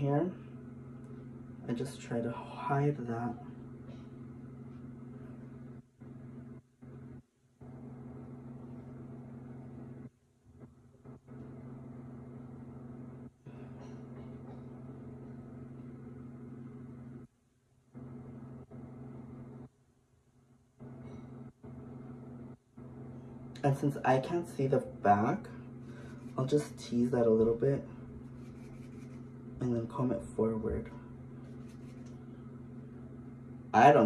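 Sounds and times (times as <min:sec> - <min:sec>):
low electrical hum: 0:00.0 - 0:34.0.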